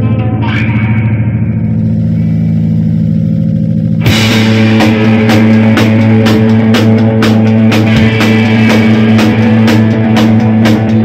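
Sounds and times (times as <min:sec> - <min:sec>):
distorted electric guitar and bass drone: 0:00.0 - 0:11.0
rising effects sweep: 0:00.6 - 0:11.0.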